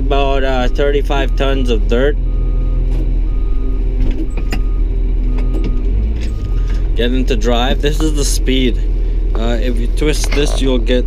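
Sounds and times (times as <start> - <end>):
diesel engine running: 0.0 - 11.0
backup alarm beeping: 2.3 - 6.8.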